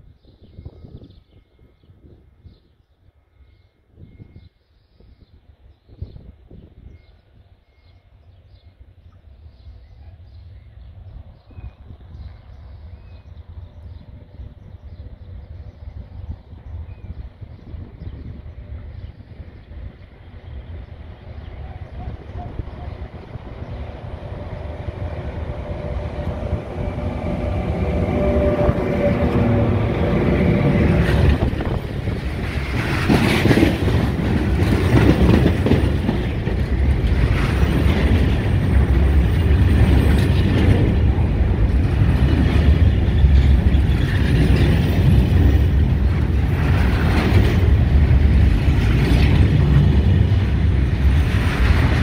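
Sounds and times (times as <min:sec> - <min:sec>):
freight train rumbling past: 0:00.0 - 0:52.0
train wheels clacking: 0:24.6 - 0:52.0.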